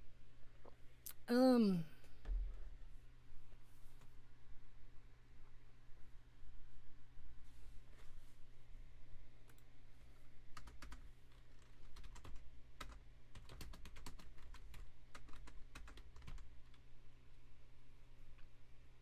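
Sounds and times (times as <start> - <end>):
typing on computer keyboard: 10.5 - 16.8.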